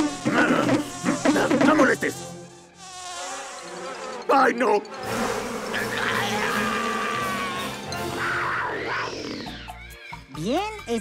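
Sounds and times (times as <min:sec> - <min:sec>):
cartoon insect buzzing: 0:00.0 - 0:07.9.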